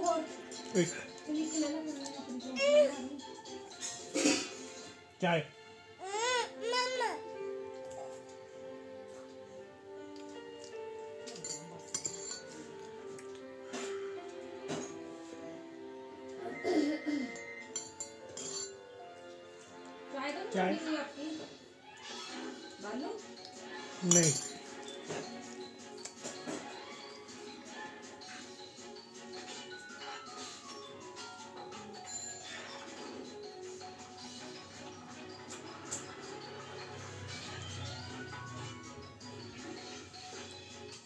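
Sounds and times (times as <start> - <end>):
background music: 0.0 - 41.0
child whining cries: 6.0 - 7.3, 16.4 - 17.6
metal clinking on steel plate: 11.3 - 12.6, 17.8 - 18.8, 24.0 - 25.0.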